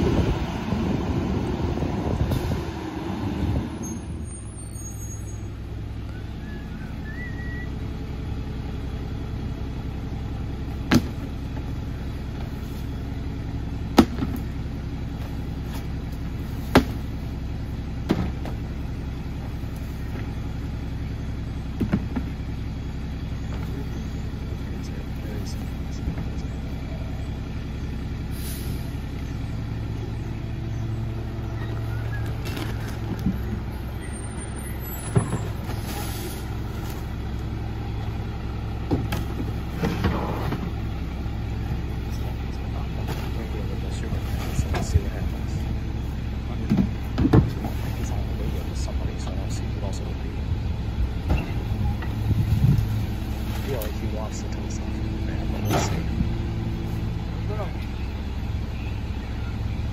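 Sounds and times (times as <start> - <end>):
diesel engine idling: 0.0 - 59.9.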